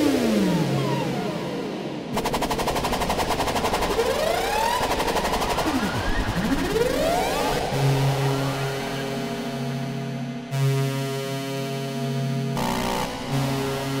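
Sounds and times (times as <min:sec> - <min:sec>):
steady low synth tones: 0:00.0 - 0:14.0
stuttering synth buzz: 0:02.1 - 0:14.0.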